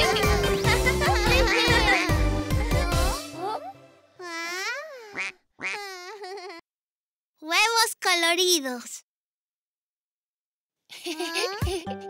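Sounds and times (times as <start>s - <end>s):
high-pitched cartoon voice: 2.8s - 6.2s, 7.4s - 9.0s.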